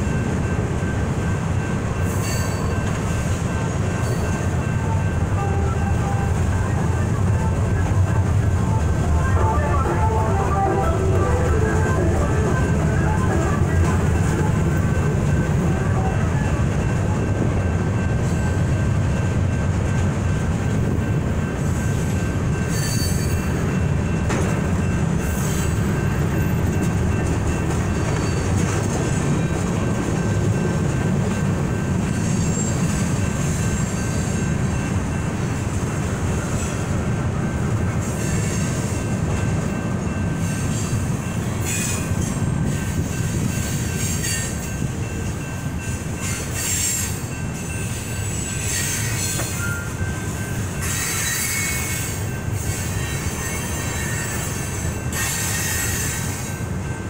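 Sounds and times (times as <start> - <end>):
freight train wheels rumbling: 0.0 - 57.0
high-pitched wheel squeal: 22.7 - 23.5, 50.8 - 56.2.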